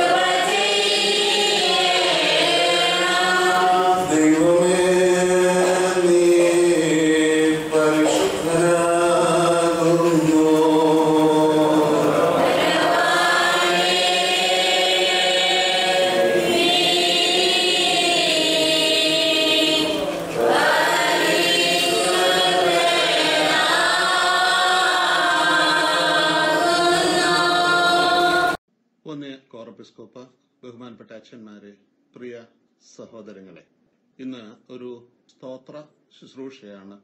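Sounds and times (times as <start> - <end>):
voices singing slow chant: 0.0 - 28.6.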